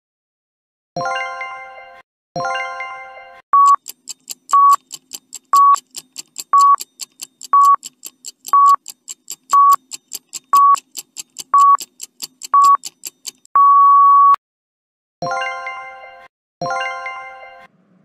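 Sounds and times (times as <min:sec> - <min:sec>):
short beeps: 0:03.6 - 0:03.8, 0:04.6 - 0:04.8, 0:05.6 - 0:05.8, 0:09.6 - 0:09.8, 0:13.6 - 0:14.4
fast ticking: 0:03.6 - 0:13.5.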